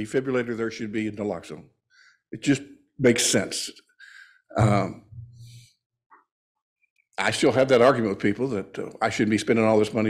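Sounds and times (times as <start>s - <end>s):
man saying um: 4.6s - 5.0s.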